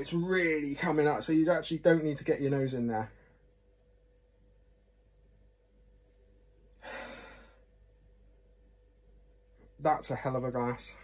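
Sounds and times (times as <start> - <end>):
man sighing breath: 6.8 - 7.6.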